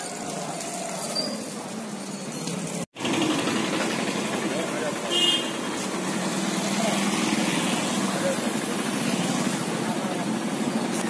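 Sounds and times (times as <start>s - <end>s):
vehicle engine running: 3.0s - 11.0s.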